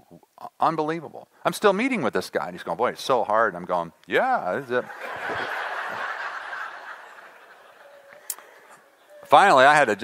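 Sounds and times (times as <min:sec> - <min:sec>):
audience laughing: 0:04.8 - 0:08.6.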